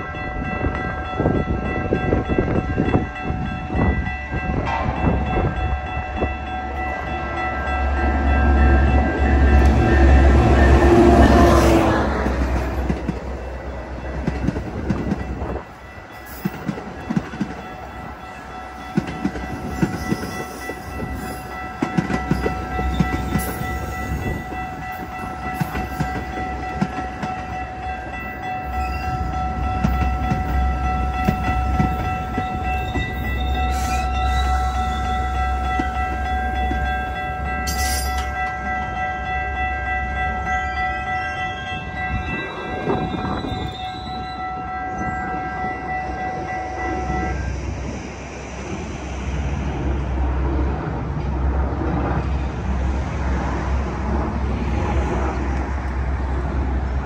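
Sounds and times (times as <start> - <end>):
diesel train whine and rumble: 0.0 - 57.0.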